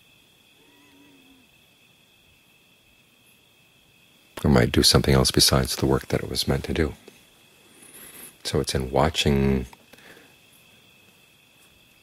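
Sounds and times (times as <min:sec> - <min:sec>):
crickets chirring: 0:00.0 - 0:12.0
faint wavering animal call: 0:00.5 - 0:01.7.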